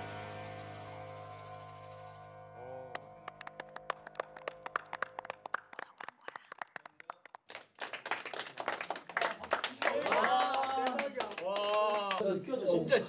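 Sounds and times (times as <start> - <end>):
people clapping: 2.9 - 12.2.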